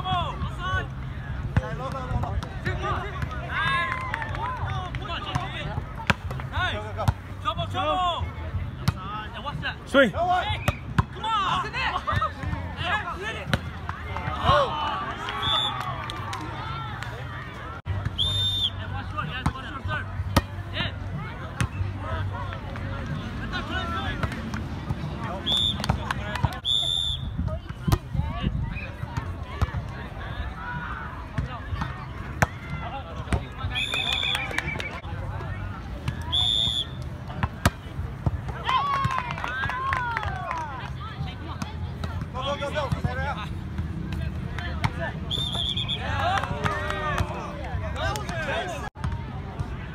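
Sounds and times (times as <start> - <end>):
voices of players and onlookers: 0.0 - 49.9.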